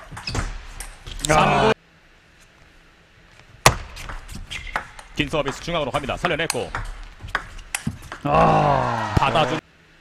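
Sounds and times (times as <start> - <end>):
ping pong ball bouncing: 6.4 - 8.3.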